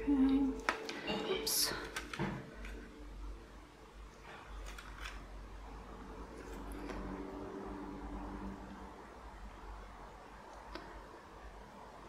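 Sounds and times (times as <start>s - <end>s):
steady low hum: 0.0s - 12.0s
paper clicks and rustles: 4.3s - 5.3s.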